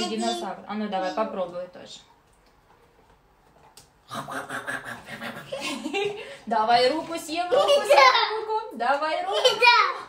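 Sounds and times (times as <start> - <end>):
person laughing in low pulses: 4.1 - 6.2.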